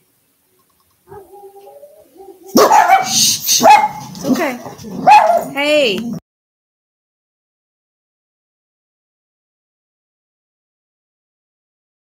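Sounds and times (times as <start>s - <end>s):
dog whining: 1.1s - 5.6s
dogs barking and yelping: 1.1s - 5.7s.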